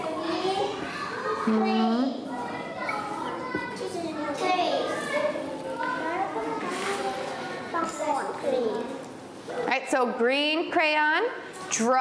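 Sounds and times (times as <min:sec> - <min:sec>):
young children chattering: 0:00.0 - 0:09.7.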